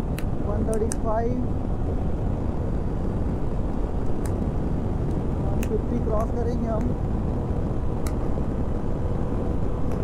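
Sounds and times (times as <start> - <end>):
motorcycle engine and tyre noise: 0.0 - 10.0
wind rushing over microphone: 0.0 - 10.0.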